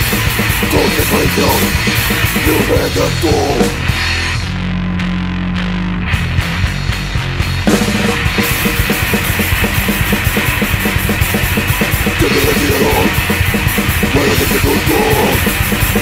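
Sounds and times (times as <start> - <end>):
punk band playing: 0.0 - 4.6, 6.1 - 16.0.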